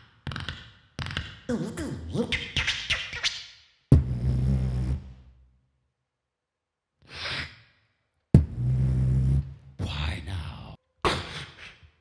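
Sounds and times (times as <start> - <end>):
beatboxing hits and buzzing bass: 3.9 - 5.3, 8.4 - 9.8.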